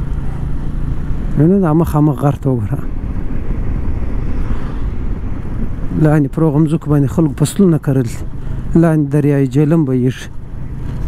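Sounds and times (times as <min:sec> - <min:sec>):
wind on microphone: 0:00.0 - 0:09.1
motorcycle engine rumble: 0:00.0 - 0:11.0.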